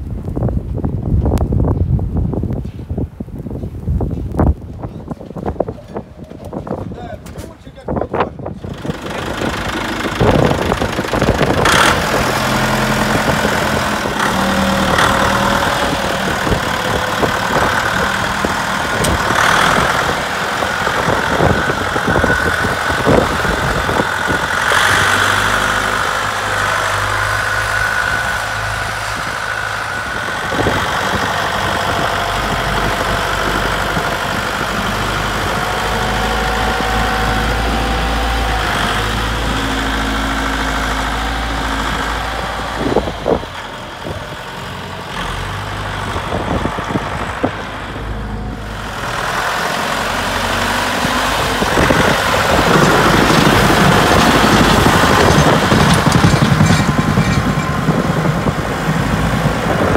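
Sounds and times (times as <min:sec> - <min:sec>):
tractor diesel engine running: 0:03.2 - 0:59.9.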